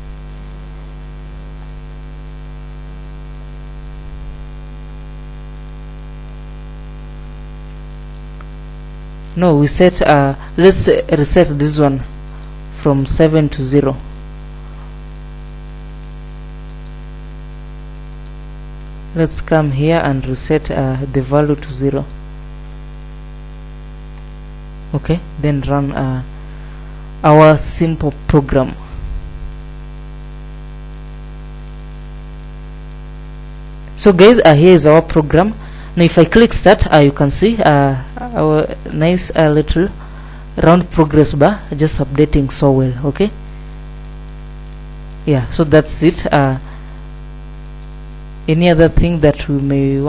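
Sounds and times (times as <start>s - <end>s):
electrical mains hum: 0.0s - 50.0s.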